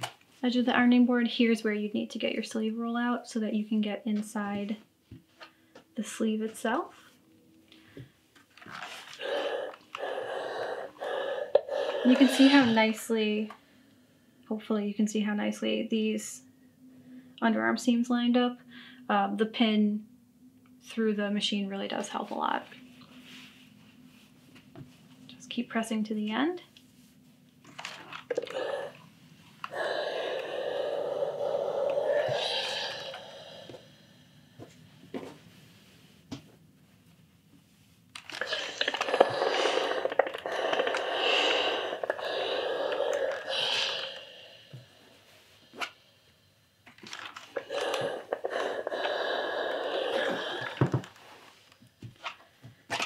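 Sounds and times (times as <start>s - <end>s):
iron rubbing over fabric: 8.9s - 13.0s.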